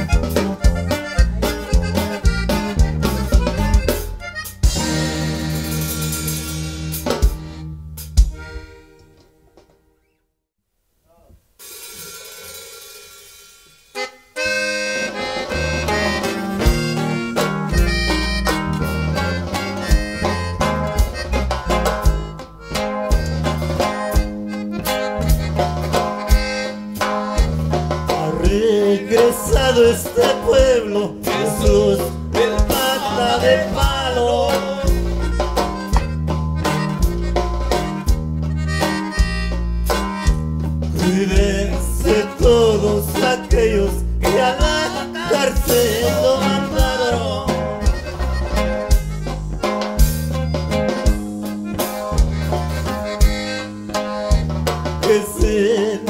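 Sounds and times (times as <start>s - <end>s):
accordion sustained notes: 0.0s - 9.5s, 13.9s - 56.0s
band music with accordion: 0.0s - 9.7s, 11.7s - 56.0s.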